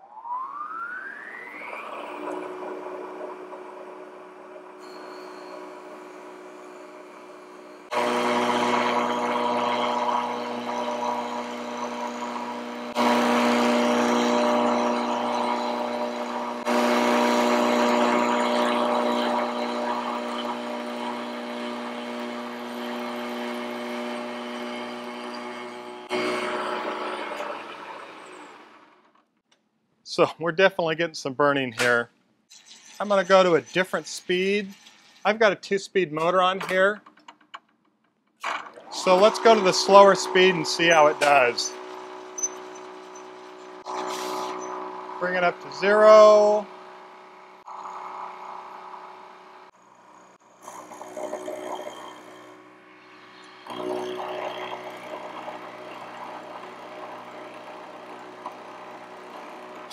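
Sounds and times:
milling machine spindle whine: 0.1 - 28.9, 32.5 - 35.6, 38.5 - 59.9
milling cutter cutting wood: 1.9 - 29.2, 38.4 - 59.9.

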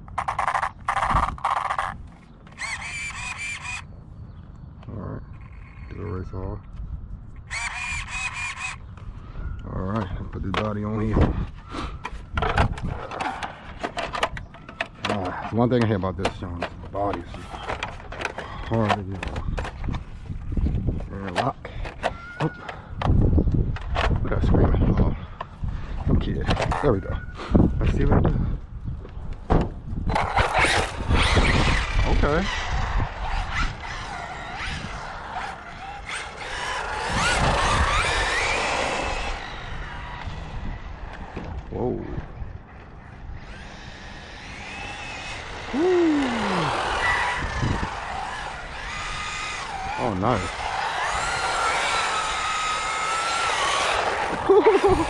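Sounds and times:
electric rc truck motor whine: 0.1 - 3.9, 7.4 - 10.1, 30.0 - 55.0.

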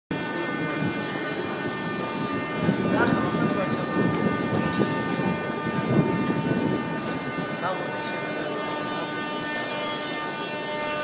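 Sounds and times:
high whining tones: 0.1 - 11.0
metro station mechanical drone: 0.1 - 11.0.

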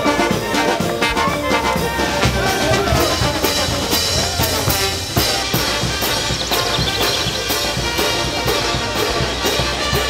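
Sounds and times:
brass band music: 0.0 - 10.0
drum kit beat: 0.2 - 10.0.

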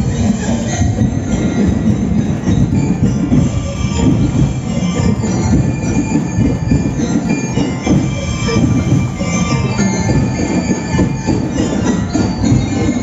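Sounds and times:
busy low drumming: 0.0 - 13.0
metallic ringing percussion: 0.0 - 13.0.

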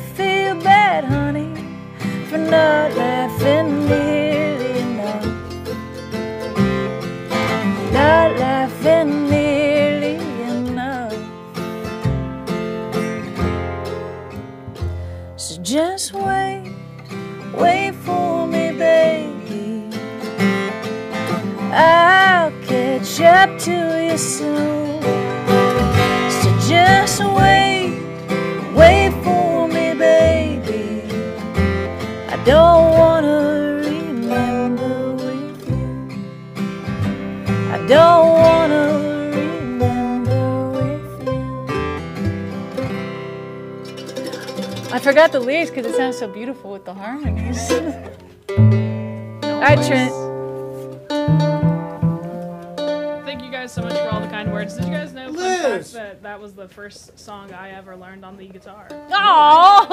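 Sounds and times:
person singing: 0.0 - 5.6, 7.8 - 11.2, 17.5 - 20.0, 21.7 - 25.2, 26.2 - 31.5, 32.2 - 36.2, 37.7 - 41.5, 47.3 - 48.2, 49.6 - 50.3
upright bass: 0.0 - 56.2
mandolin: 0.0 - 59.9
strummed acoustic guitar: 0.0 - 59.9.

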